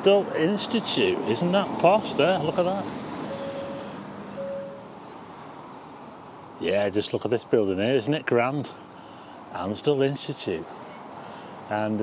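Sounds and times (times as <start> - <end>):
low hum of road noise: 0.0 - 12.0
car passing: 0.5 - 6.0
brief steady tone: 3.3 - 4.9.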